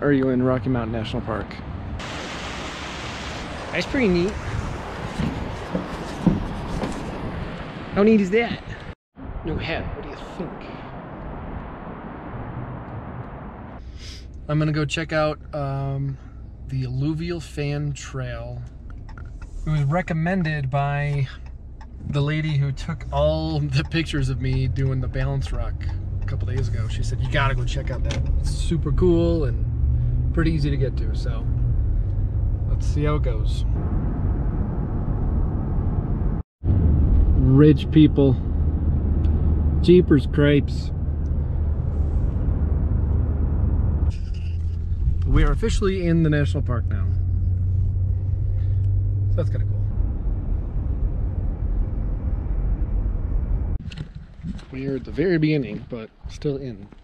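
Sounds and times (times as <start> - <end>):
car interior road rumble: 0.0 - 57.0.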